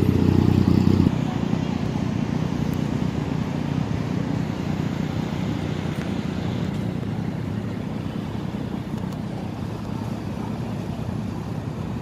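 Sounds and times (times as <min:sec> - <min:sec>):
cars driving past: 0:00.0 - 0:12.0.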